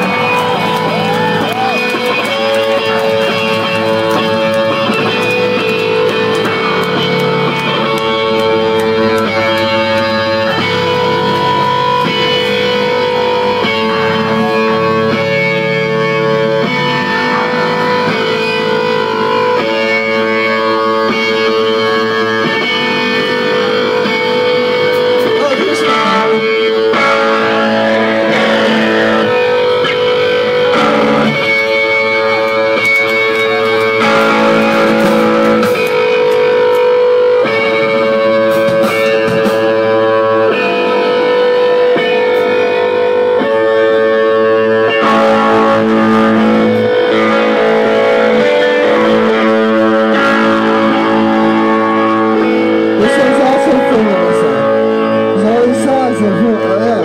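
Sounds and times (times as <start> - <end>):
electric guitar chords: 0.0 - 57.0
live rock band playing: 0.0 - 57.0.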